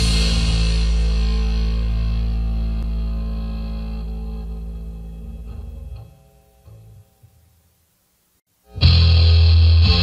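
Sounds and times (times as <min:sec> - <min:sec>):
distorted bass guitar chord: 0:00.0 - 0:07.2, 0:08.7 - 0:10.0.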